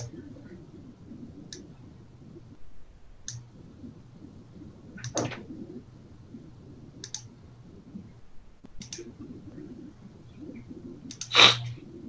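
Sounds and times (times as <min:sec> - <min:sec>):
low steady hum: 0:00.0 - 0:12.0
faint sharp computer clicks: 0:07.0 - 0:07.3, 0:08.6 - 0:09.1.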